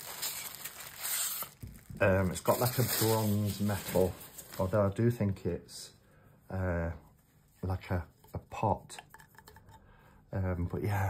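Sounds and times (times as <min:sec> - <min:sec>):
plastic wrapping crinkling: 0:00.0 - 0:05.2.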